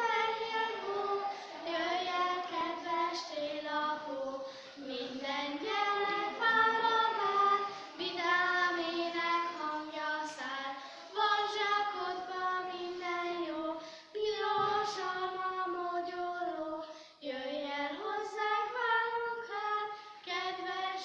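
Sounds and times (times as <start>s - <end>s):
girls singing: 0.0s - 21.0s.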